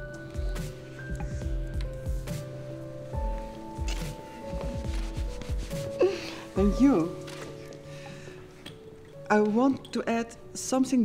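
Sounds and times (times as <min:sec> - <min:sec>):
quiet background music: 0:00.0 - 0:11.0
fabric rubbing on microphone: 0:03.8 - 0:07.5.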